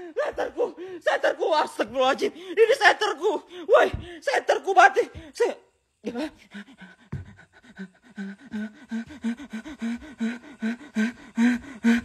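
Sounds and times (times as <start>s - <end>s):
man panting: 0.0s - 1.0s, 6.4s - 12.0s.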